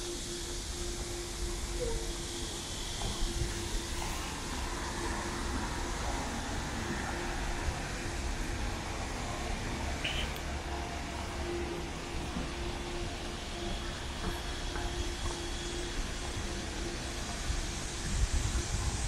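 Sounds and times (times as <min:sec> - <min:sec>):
distant traffic rumble: 0:02.8 - 0:19.0.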